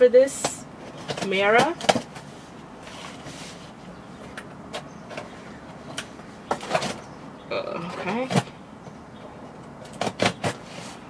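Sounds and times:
cardboard box rustling and scraping: 2.2 - 3.8, 10.1 - 11.0.

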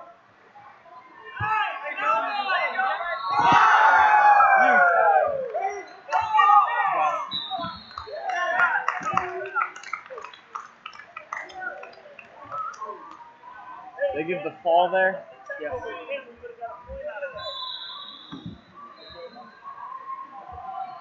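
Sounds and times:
crowd shouting: 1.4 - 9.7
people clapping: 4.6 - 6.6, 7.6 - 13.3.

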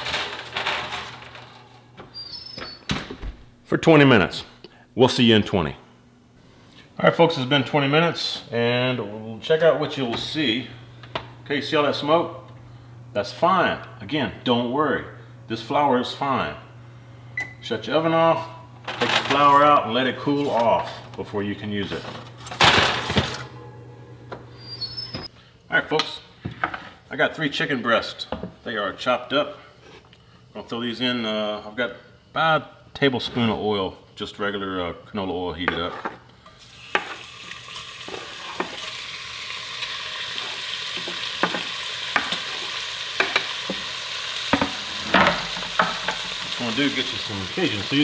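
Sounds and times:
low steady hum: 3.5 - 26.4.

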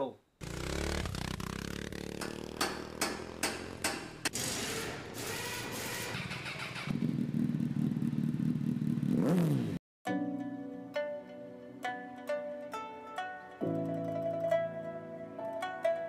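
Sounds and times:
motorcycle engine running: 0.4 - 9.8
sharp knocks: 2.0 - 4.4.

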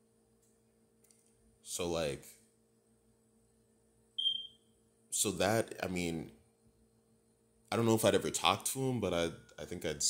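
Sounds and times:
high-pitched electronic beep: 4.2 - 4.6.

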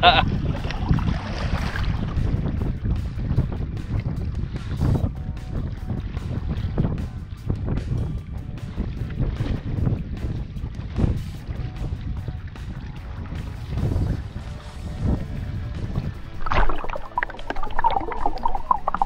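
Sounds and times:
choppy sea water: 0.0 - 19.0
wind buffeting microphone: 0.0 - 19.0
faint background music: 1.1 - 19.0.

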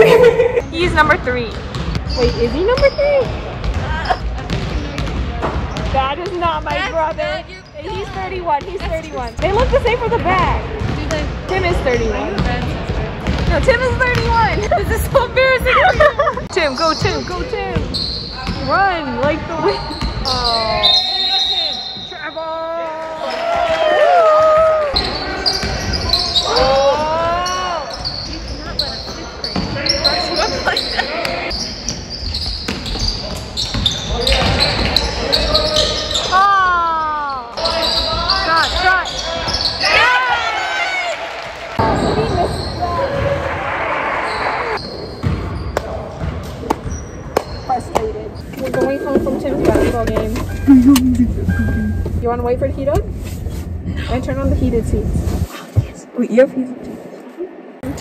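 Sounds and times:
sneakers squeaking: 0.0 - 23.8, 24.6 - 40.2, 41.8 - 43.5, 44.2 - 54.8
voices echoing in hall: 0.0 - 52.9
basketball bouncing on court: 0.8 - 20.4, 31.9 - 35.1, 45.2 - 49.5.

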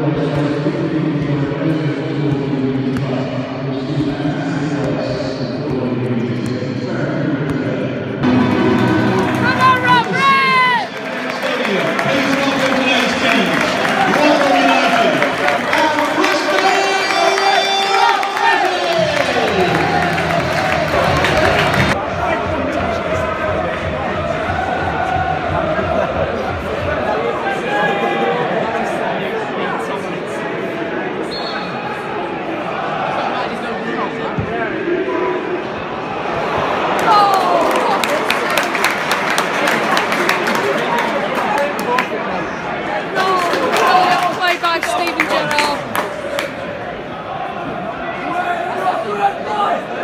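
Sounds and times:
crowd noise: 0.0 - 50.0
crowd cheering and clapping: 8.2 - 27.1, 36.4 - 47.9.

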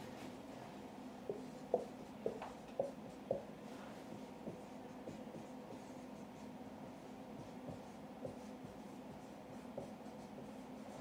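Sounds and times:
marker scratching on whiteboard: 1.3 - 11.0.

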